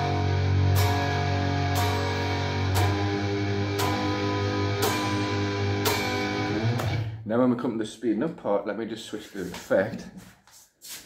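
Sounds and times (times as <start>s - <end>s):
distorted electric guitar power chords: 0.0s - 7.2s.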